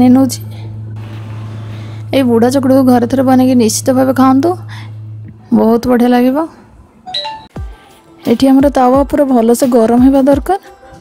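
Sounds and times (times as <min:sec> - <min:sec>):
woman speaking: 0:00.0 - 0:00.6, 0:02.1 - 0:04.8, 0:05.4 - 0:06.6, 0:08.2 - 0:10.7
two-note electronic chime: 0:07.1 - 0:07.7.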